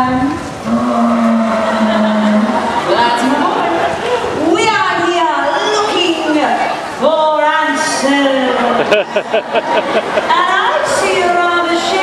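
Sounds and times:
sea lion calling: 0.6 - 4.4.

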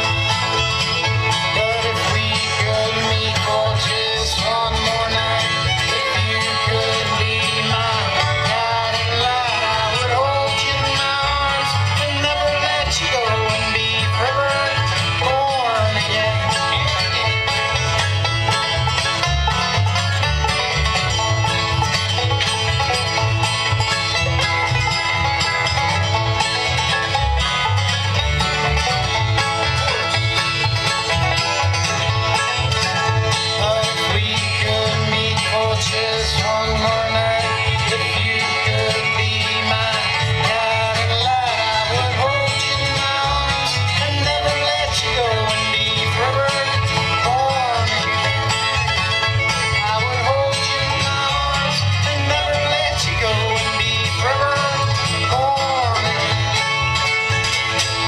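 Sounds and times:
bluegrass band playing: 0.0 - 58.0.

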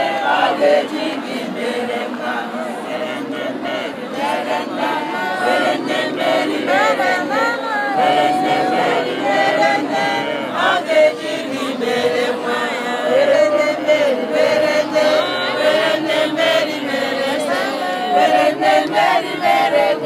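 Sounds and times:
crowd singing together: 0.0 - 20.0.

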